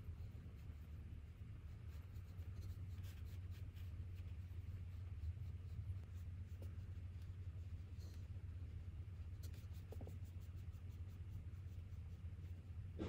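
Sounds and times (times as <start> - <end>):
low room hum: 0.0 - 13.0
paintbrush strokes on paper: 0.0 - 13.0.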